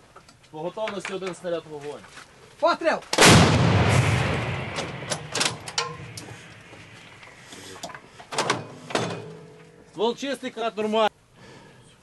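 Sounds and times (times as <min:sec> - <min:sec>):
echo of artillery gun shot: 0:03.2 - 0:07.3
metallic knocks and clanks: 0:04.7 - 0:06.9, 0:07.8 - 0:09.9.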